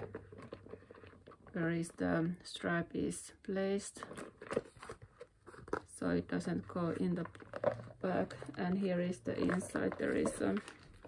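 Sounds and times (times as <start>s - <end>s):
handbag rustling: 4.1s - 11.0s.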